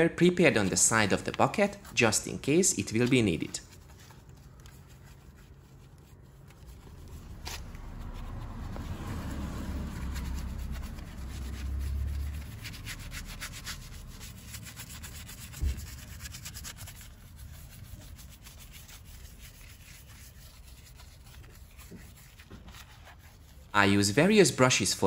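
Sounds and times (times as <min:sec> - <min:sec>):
brush scrubbing a wheel: 0:00.4 - 0:24.2.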